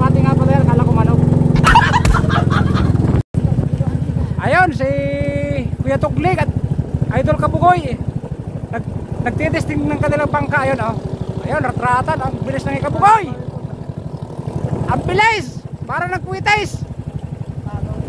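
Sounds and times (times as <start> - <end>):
boat engine running: 0.0 - 18.0
voices calling out: 0.0 - 18.0.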